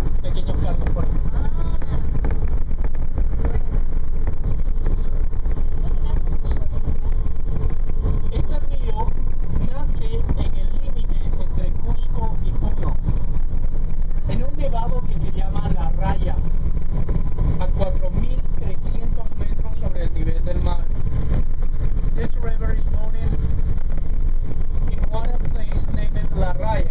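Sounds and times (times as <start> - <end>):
faint voices: 0.0 - 23.4
vehicle engine and road rumble: 0.0 - 26.9.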